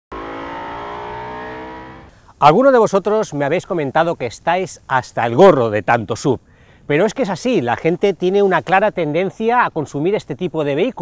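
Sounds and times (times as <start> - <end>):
car engine running: 0.1 - 2.1.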